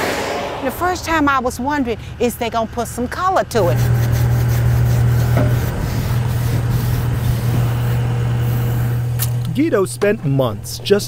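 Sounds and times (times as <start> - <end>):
steady low hum: 0.0 - 11.0
paintbrush scrubbing concrete: 3.7 - 7.7.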